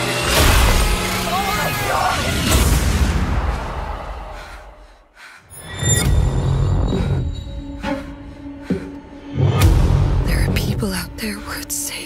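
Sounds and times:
low droning music: 5.5 - 12.0.

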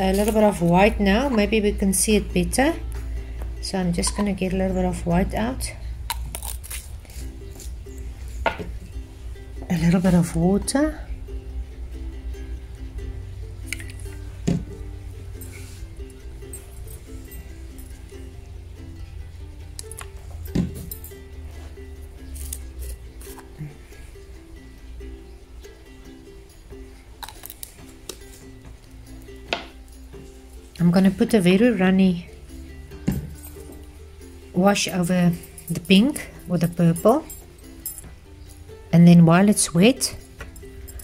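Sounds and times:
soft plucked background music: 0.0 - 41.0.

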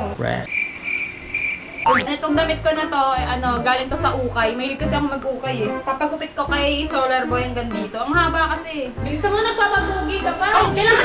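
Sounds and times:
cricket chirping: 0.5 - 2.0
music: 1.9 - 11.0.

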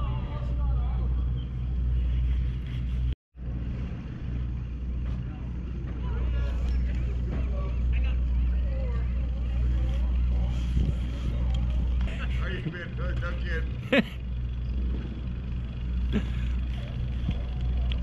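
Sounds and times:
boat engine idling: 0.0 - 18.0.

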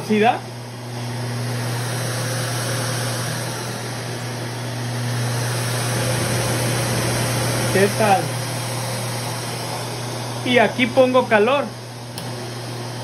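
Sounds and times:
pet blower dryer running: 0.0 - 13.0.

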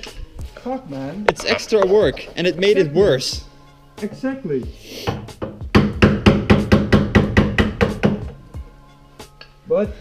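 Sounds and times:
background music: 0.0 - 10.0
hand tool knocking on metal: 1.3 - 2.5, 5.1 - 8.4.

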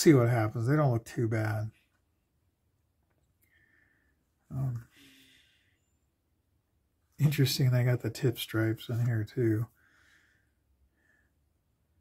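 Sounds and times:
faint breath: 3.4 - 6.0, 9.7 - 11.5.

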